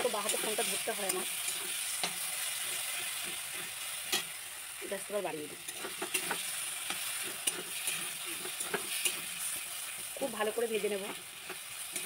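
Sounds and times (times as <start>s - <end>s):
oil sizzling: 0.0s - 12.0s
spatula scraping paste in wok: 5.6s - 10.0s.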